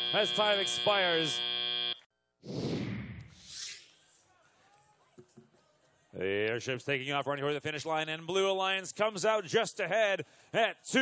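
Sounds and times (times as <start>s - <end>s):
cartoon airship whoosh: 2.4s - 4.0s.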